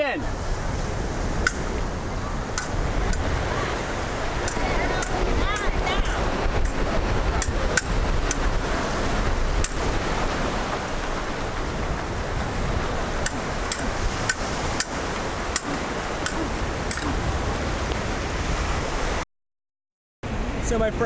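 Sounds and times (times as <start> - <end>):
ocean surf washing on beach: 0.0 - 19.2, 20.3 - 21.0
wind buffeting microphone: 0.0 - 19.2
sharp clicks: 13.2 - 17.1.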